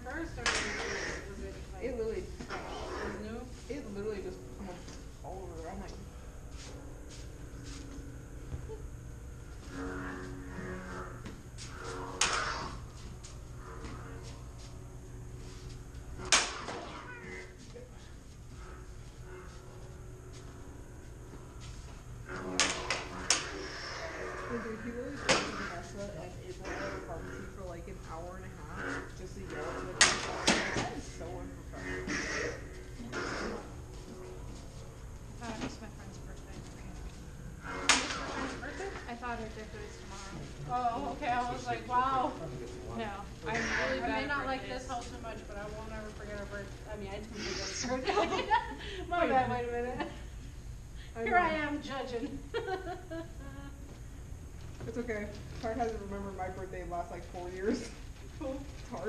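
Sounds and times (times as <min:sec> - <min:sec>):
lightsabers clashing: 0:10.8 - 0:12.8, 0:16.2 - 0:17.5, 0:37.6 - 0:38.6
lightsaber blades clashing: 0:37.6 - 0:38.6.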